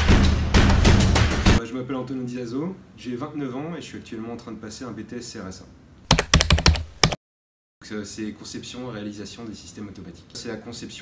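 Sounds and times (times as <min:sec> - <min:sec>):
computer keyboard typing: 0:06.1 - 0:07.2.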